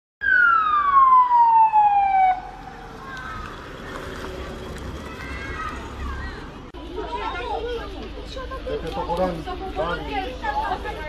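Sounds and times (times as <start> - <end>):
ambulance siren wailing: 0.2 - 4.6.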